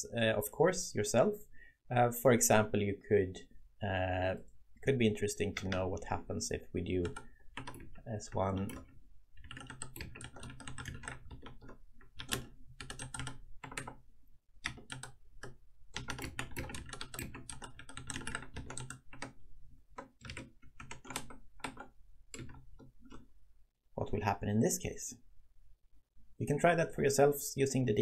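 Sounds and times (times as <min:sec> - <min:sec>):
typing on computer keyboard: 0:07.0 - 0:14.0, 0:14.6 - 0:23.3.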